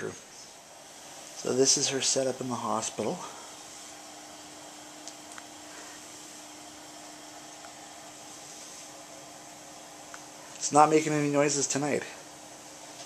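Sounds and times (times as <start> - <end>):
faint machine hum: 0.0 - 13.0
breathing machine air hiss: 0.2 - 13.0.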